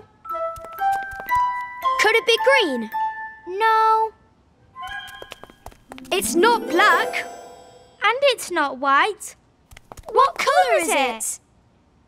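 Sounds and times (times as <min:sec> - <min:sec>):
soft cartoon music: 0:00.0 - 0:08.0.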